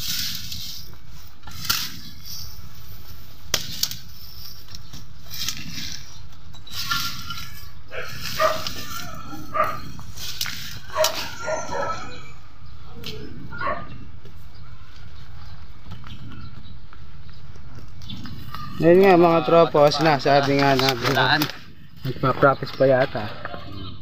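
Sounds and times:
dog barking: 7.9s - 9.9s, 10.9s - 12.4s, 13.5s - 14.0s.

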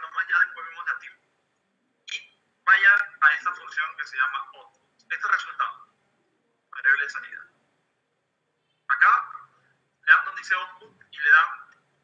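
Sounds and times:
person speaking: 0.0s - 1.2s, 2.1s - 5.9s, 6.7s - 7.6s, 8.9s - 11.8s.

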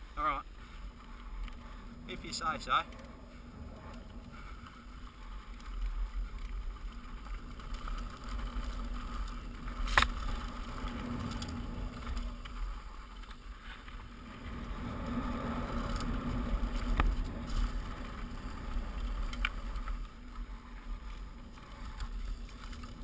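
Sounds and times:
tyres rumbling on dirt: 0.0s - 23.0s.

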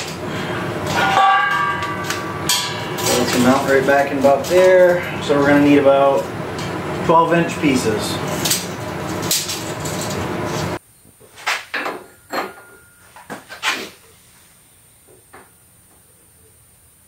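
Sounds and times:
steady loud noise: 0.0s - 10.8s.

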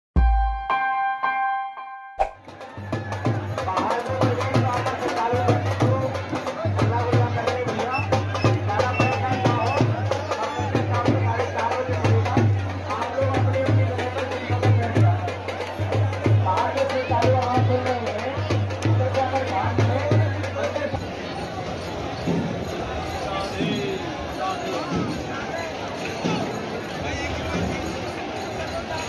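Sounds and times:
drums beating fast rhythm: 0.2s - 0.7s, 2.2s - 24.0s
crowd singing and shouting: 2.2s - 21.1s.

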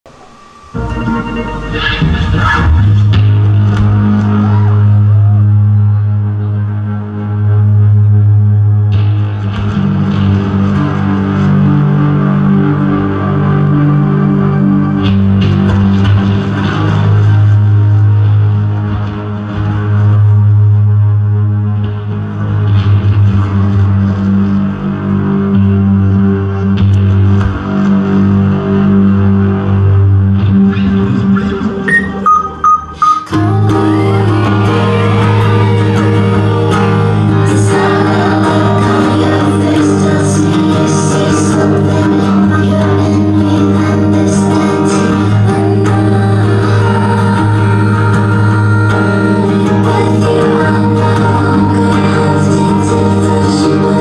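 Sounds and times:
electronic pop band playing: 0.0s - 6.4s, 30.6s - 54.0s.

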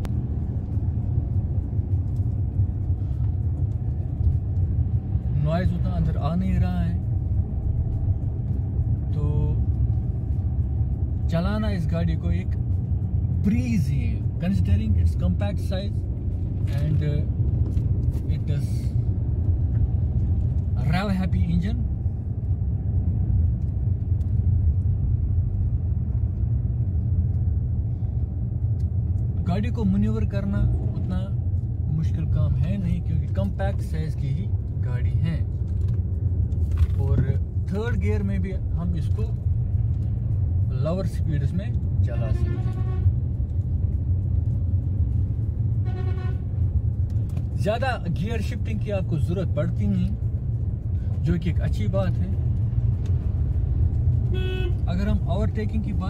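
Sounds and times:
car engine and road noise rumble: 0.0s - 56.0s.

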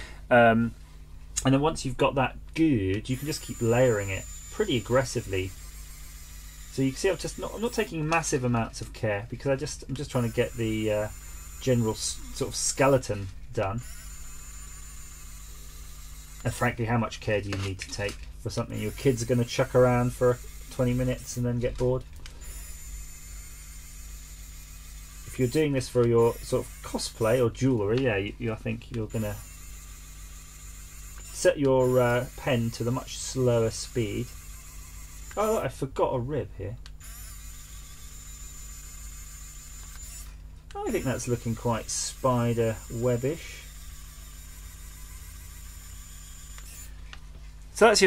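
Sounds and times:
low electrical hum: 0.0s - 48.0s
faint high whine: 1.4s - 46.9s
motor whirring buzz: 2.9s - 48.0s.

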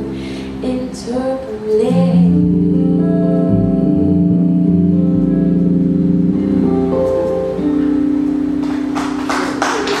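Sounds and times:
jazz trio with guitar and voice: 0.0s - 10.0s
audience clapping: 8.6s - 10.0s.

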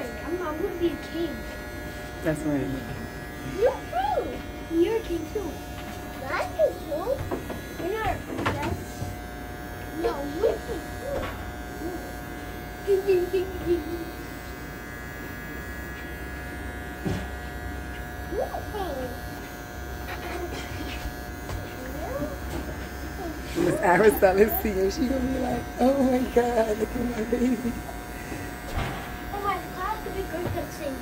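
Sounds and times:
electric hair clippers buzzing: 0.0s - 31.0s.

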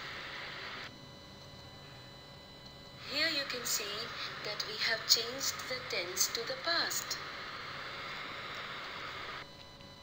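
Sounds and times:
faint steady whine: 0.0s - 10.0s.

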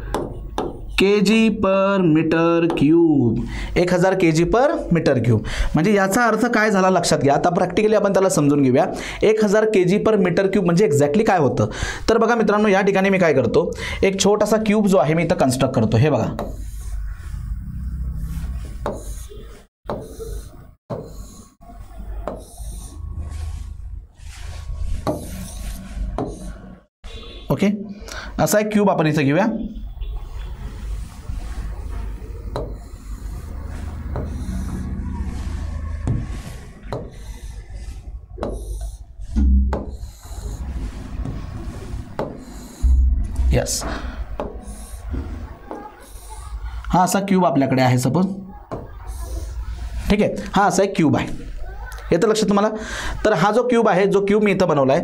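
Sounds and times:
pen tapping and scraping on board: 16.4s - 16.8s, 18.7s - 19.3s, 19.9s - 21.4s, 22.2s - 22.8s, 25.0s - 26.5s, 36.9s - 37.5s, 38.4s - 39.0s, 39.7s - 40.6s, 42.2s - 42.7s, 44.4s - 45.9s
pen scratching on display board: 16.4s - 17.0s, 18.2s - 21.5s, 22.2s - 23.7s, 24.4s - 26.6s, 32.5s - 43.0s, 44.4s - 46.4s
dull low thumps: 39.2s - 44.6s.

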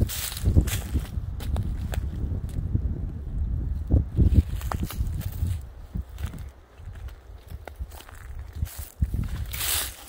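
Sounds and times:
footsteps in dry leaves and twigs: 0.0s - 2.8s, 3.8s - 10.0s.

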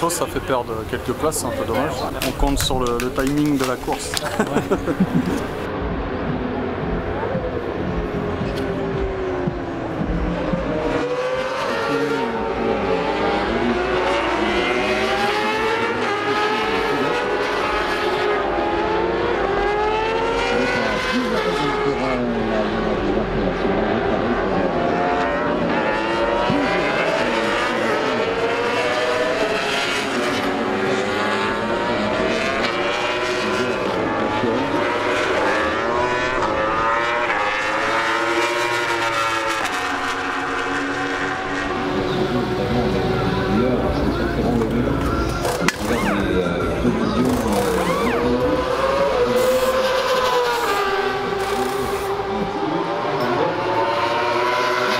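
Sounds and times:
racing motorcycles passing by: 0.0s - 54.9s.

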